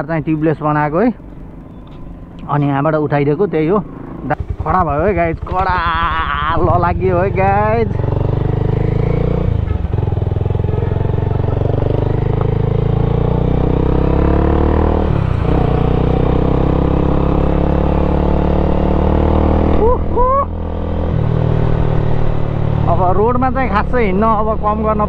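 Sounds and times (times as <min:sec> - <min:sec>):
motorcycle engine running: 0:00.1 - 0:25.0.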